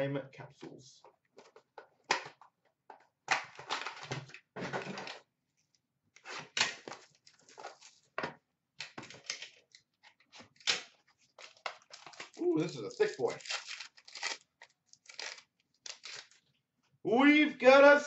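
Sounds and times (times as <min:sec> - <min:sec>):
trading cards rustling and sliding: 0:11.2 - 0:16.4.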